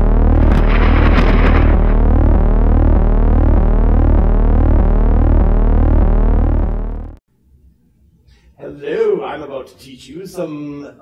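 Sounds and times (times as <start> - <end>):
synthetic electric buzzing drone: 0.0 - 7.2.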